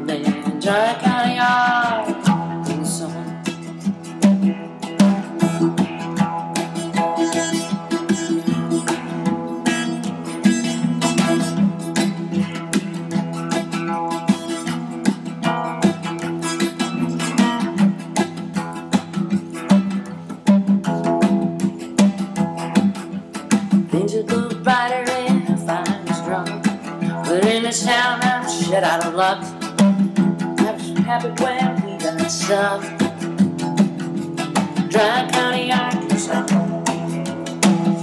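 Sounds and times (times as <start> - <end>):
acoustic guitar strumming: 0.0 - 38.0
electric guitar lead line: 0.0 - 38.0.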